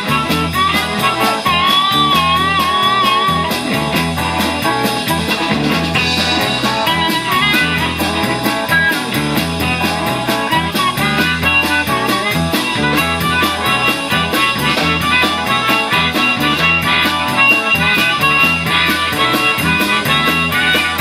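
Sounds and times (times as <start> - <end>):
drums: 0.0 - 21.0
electric bass line: 0.0 - 21.0
electric guitar: 0.0 - 21.0
harmonica through microphone: 0.0 - 21.0.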